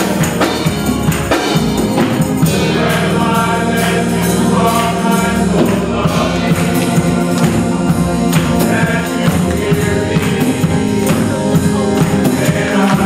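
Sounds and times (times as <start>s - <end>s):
hand clapping: 0.0s - 2.4s, 6.6s - 7.7s, 8.3s - 13.0s
men's choir singing gospel: 0.0s - 13.0s.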